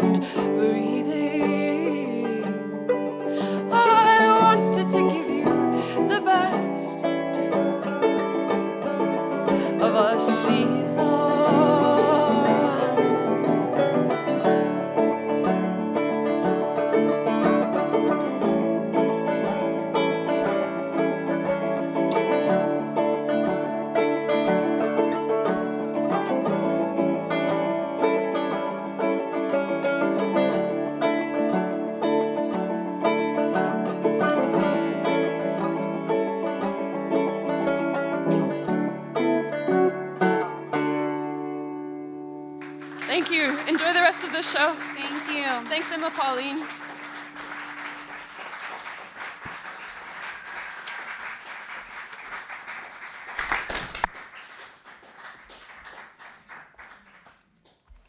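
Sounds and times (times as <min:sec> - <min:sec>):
electric guitar: 0:00.0 - 0:43.1
plucked banjo: 0:00.0 - 0:48.1.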